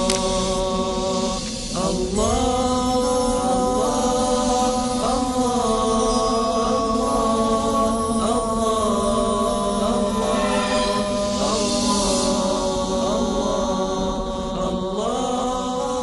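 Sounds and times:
layered voices chanting: 0.0s - 16.0s
low held note: 10.1s - 12.6s.

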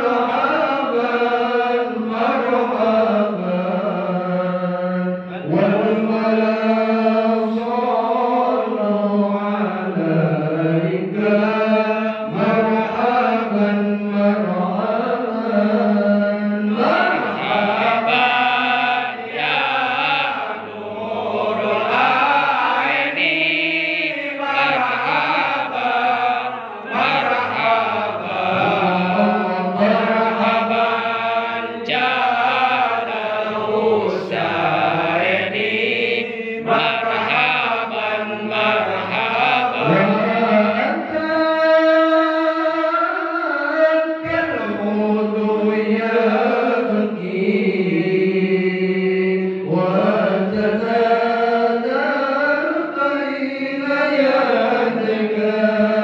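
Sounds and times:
men chanting devotional song: 0.0s - 56.0s.

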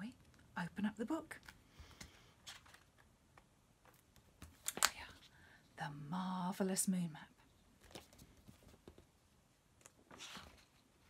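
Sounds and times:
paper and book cover rustling: 2.4s - 3.1s, 7.8s - 9.1s, 9.8s - 11.0s.

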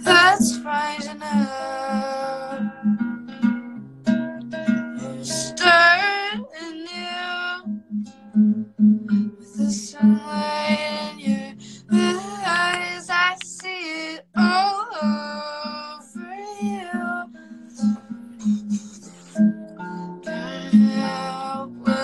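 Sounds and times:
woman singing: 0.0s - 2.9s, 4.9s - 7.7s, 9.0s - 22.0s
strummed acoustic guitar: 0.0s - 22.0s.

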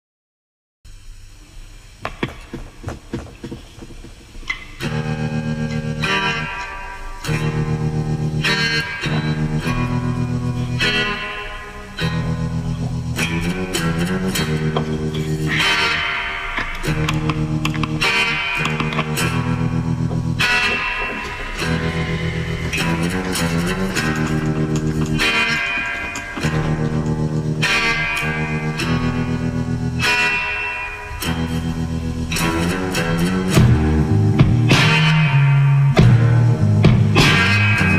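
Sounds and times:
electric guitar: 1.2s - 37.9s.

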